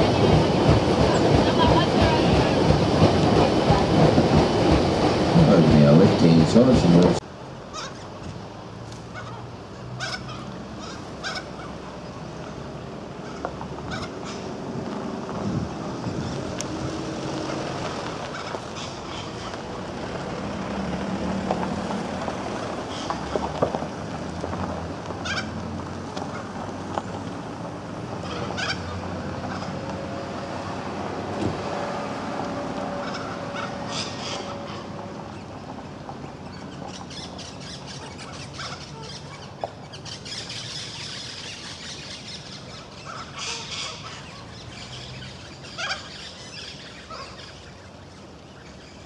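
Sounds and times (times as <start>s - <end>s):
outdoor background noise: 0.0s - 49.0s
birds calling: 9.0s - 14.6s, 15.9s - 20.3s, 22.6s - 23.4s, 25.2s - 30.0s, 32.8s - 49.0s.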